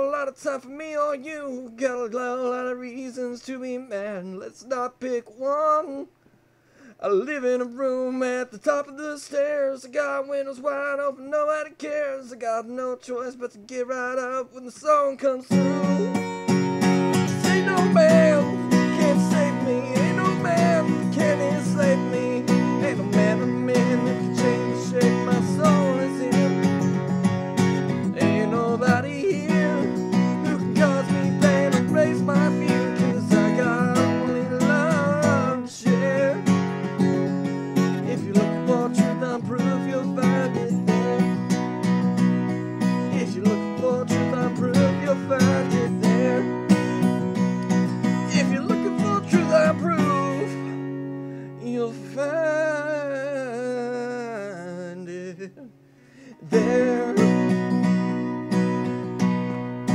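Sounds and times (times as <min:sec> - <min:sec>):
acoustic guitar strummed: 0:13.9 - 0:59.9.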